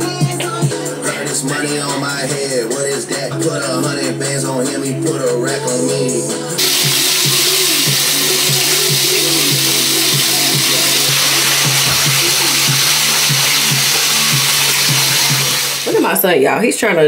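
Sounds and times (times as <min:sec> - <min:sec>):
hip-hop song from speaker: 0:00.0 - 0:16.2
water running into bathtub: 0:06.6 - 0:16.5.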